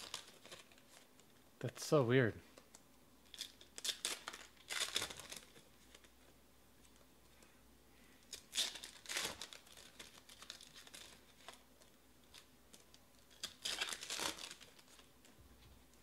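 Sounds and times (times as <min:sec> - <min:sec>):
foil packs crinkling and tearing: 0:00.0 - 0:01.1, 0:03.3 - 0:06.1, 0:08.3 - 0:15.1.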